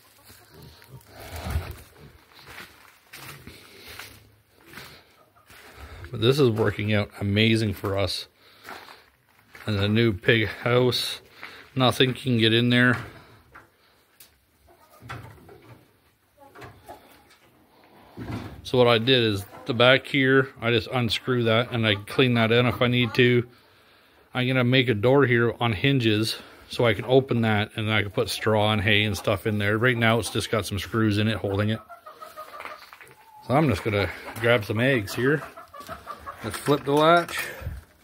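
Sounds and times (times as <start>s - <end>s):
hens clucking faintly: 0.0s - 38.0s.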